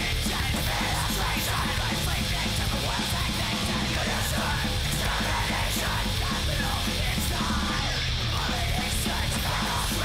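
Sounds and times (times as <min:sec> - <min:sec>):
bass guitar: 0:00.0 - 0:10.0
distorted guitars: 0:00.0 - 0:10.0
fast drums with cymbal crashes: 0:00.0 - 0:10.0.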